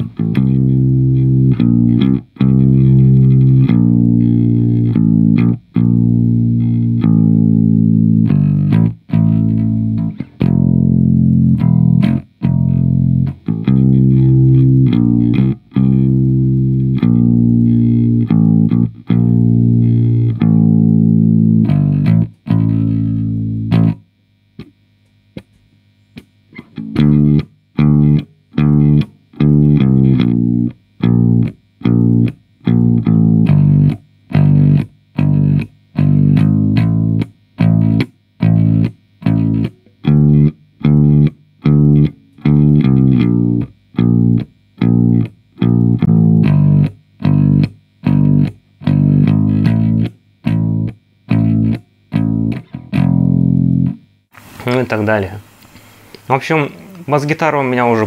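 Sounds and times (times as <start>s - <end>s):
electric bass guitar notes: 0.0s - 58.0s.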